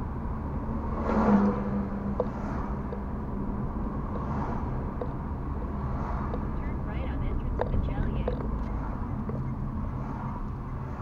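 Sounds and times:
car road rumble: 0:00.0 - 0:11.0
truck passing: 0:00.0 - 0:11.0.

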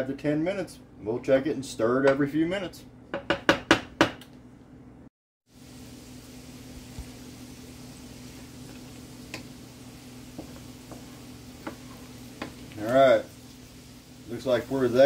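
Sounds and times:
wooden spoon knocking on skillet: 0:03.1 - 0:04.2, 0:10.3 - 0:13.0
butter and onion sizzling: 0:05.5 - 0:15.0.

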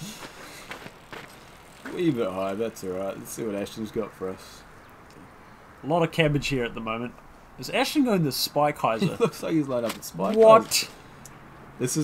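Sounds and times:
faint outdoor background noise: 0:00.0 - 0:12.0.

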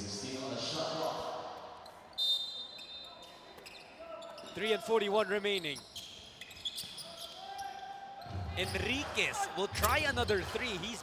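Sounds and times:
shoe squeaks: 0:01.8 - 0:09.0.

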